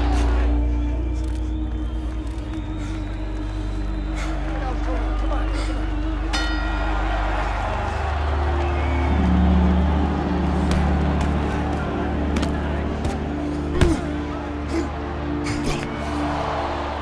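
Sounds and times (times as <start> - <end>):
film score low notes: 0.0 - 17.0
ring bell: 6.3 - 7.7.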